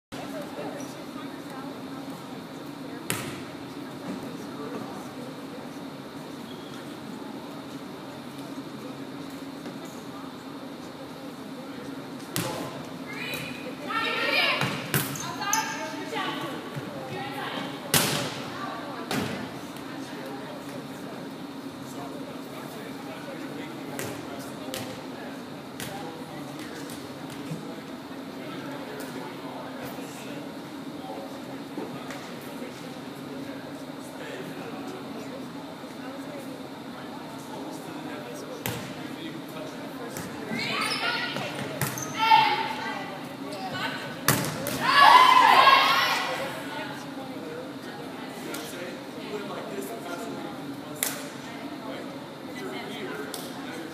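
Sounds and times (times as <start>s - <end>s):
volleyball smacks with echo: 3.1s - 3.4s, 17.9s - 18.4s, 44.3s - 44.8s
girls calling out: 44.8s - 46.6s.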